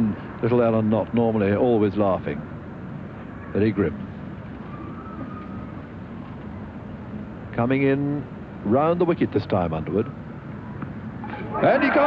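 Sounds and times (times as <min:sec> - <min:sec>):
low broadcast background noise: 0:00.0 - 0:12.0.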